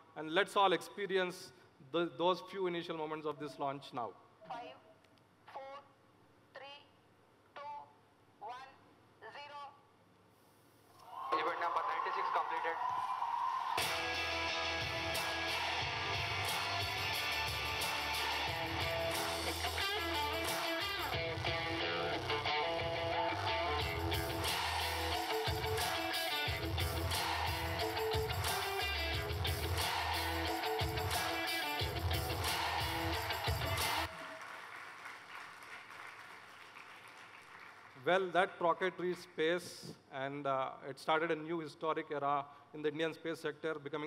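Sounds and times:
electric guitar music with heavy beat: 13.8 - 34.1.

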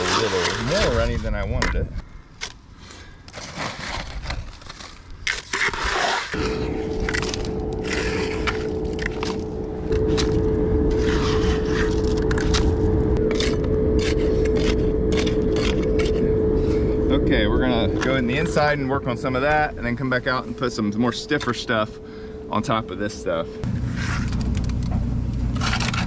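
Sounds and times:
trowel scraping concrete in bucket: 0.0 - 1.8, 3.3 - 12.6, 13.2 - 16.8
machine hum: 6.3 - 26.0.

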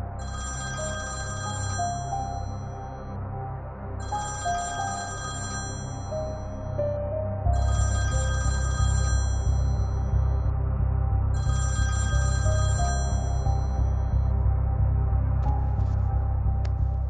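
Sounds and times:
soft background music: 0.0 - 17.0
telephone ringing: 0.2 - 3.2, 4.0 - 6.8, 7.6 - 10.4, 11.4 - 14.3
deep bass pulse: 9.5 - 11.5, 13.3 - 17.0.

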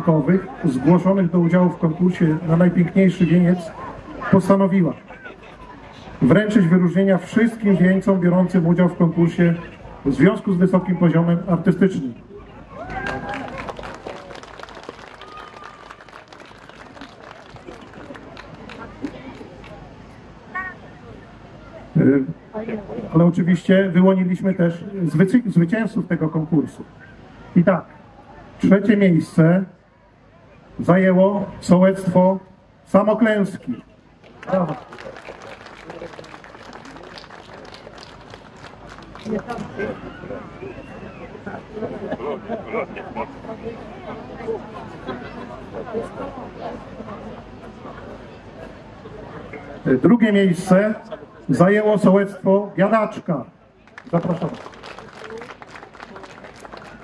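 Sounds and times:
audience applauding: 12.8 - 19.8, 34.2 - 39.9, 53.8 - 57.0.

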